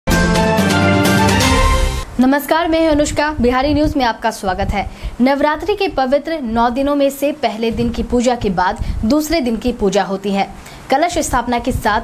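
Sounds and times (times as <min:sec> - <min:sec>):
news theme music: 0:00.1 - 0:02.1.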